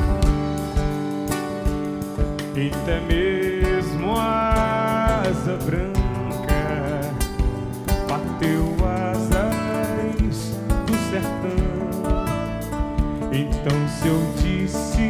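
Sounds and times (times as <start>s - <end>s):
live band playing: 0.0s - 15.0s
man singing: 2.4s - 15.0s.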